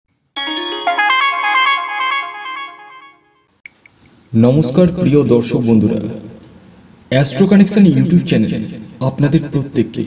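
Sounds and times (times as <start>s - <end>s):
electronic chime jingle: 0.4s - 3.4s.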